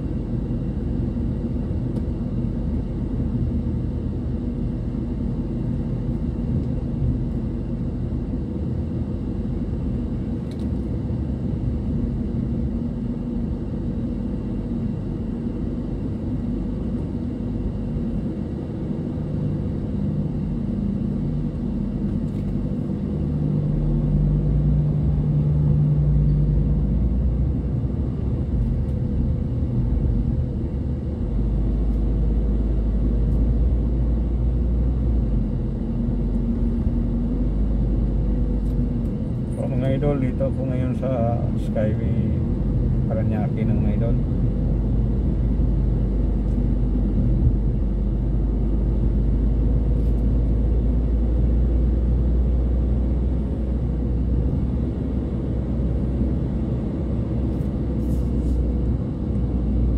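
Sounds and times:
car engine and tyres rumble: 0:00.0 - 0:59.9.

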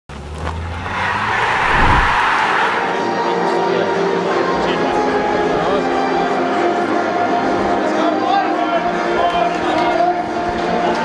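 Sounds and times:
noisy whoosh: 0:01.1 - 0:02.9.

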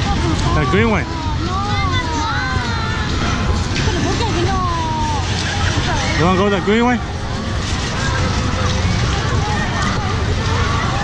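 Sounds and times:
crowd chatter: 0:00.0 - 0:11.0
rides and machinery rumbling: 0:00.0 - 0:11.0.

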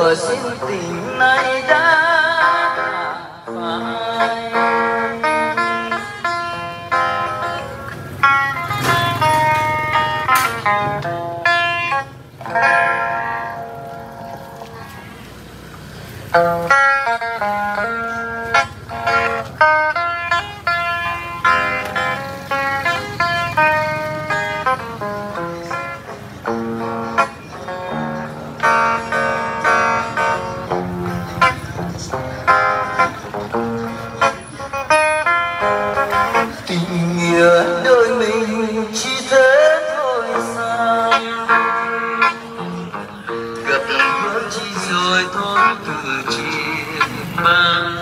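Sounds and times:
electric guitar note ringing: 0:00.0 - 0:15.1, 0:16.3 - 0:48.0.

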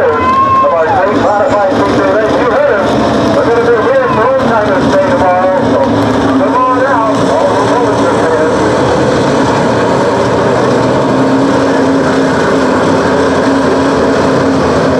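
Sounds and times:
race car engine idling: 0:00.0 - 0:14.9.

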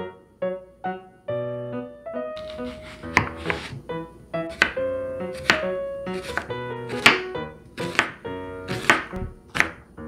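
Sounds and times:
soft background music: 0:00.0 - 0:10.0
knife knocking on cutting board: 0:03.1 - 0:03.8, 0:07.9 - 0:09.8.

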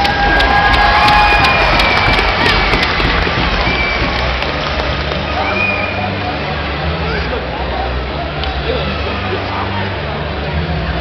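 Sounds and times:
hockey sticks clacking on puck: 0:00.0 - 0:04.3
crowd hubbub: 0:00.0 - 0:11.0
music playing: 0:00.0 - 0:11.0.

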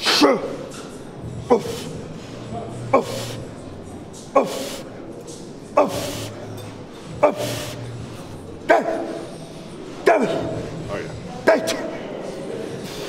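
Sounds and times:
breathy exhale: 0:07.4 - 0:07.9.

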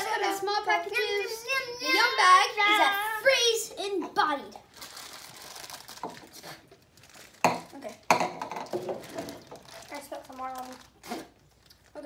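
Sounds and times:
children's vocal sounds: 0:00.0 - 0:04.7
wrapper crinkling: 0:04.6 - 0:12.0
candies rattling in cardboard tubes: 0:04.7 - 0:12.0.

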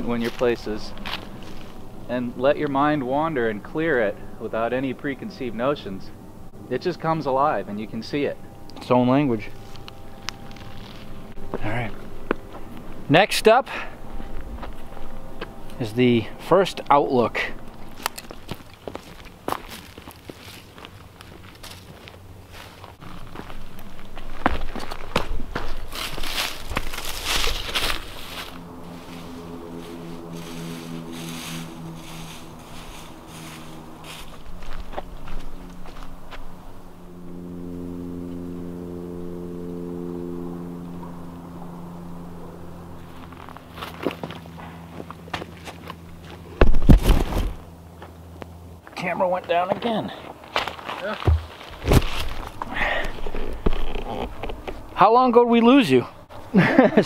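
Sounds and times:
footsteps crunching on leaves: 0:00.0 - 0:02.1, 0:09.5 - 0:13.0, 0:14.0 - 0:16.4, 0:17.5 - 0:36.6, 0:43.1 - 0:48.2, 0:50.2 - 0:52.6
steady low hum: 0:00.0 - 0:57.0.

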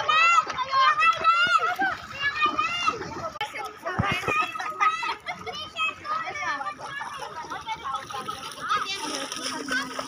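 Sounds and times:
children's voices: 0:00.0 - 0:10.0
people chattering and calling out: 0:00.0 - 0:10.0
water splashing: 0:00.0 - 0:10.0.

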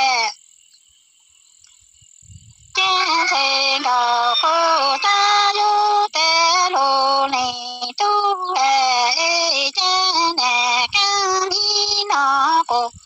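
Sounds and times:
woman singing long held notes: 0:02.8 - 0:13.0.

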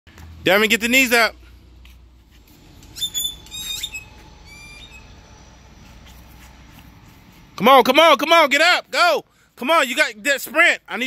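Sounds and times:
birds calling: 0:02.5 - 0:07.3.

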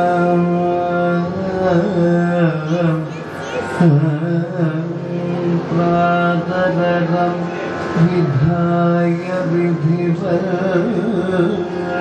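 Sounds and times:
man singing slow melody: 0:00.0 - 0:12.0
steady drone: 0:00.0 - 0:12.0.

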